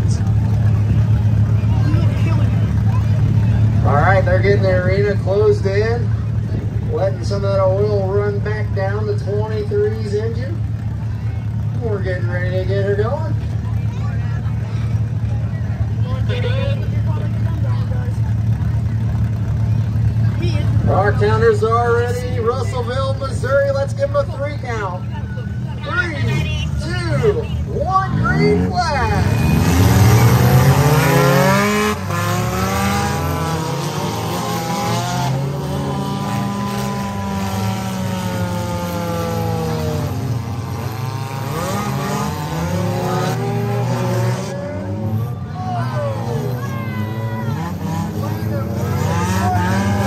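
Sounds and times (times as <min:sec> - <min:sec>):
faint voices: 0:00.0 - 0:50.0
race car engines idling: 0:00.0 - 0:50.0.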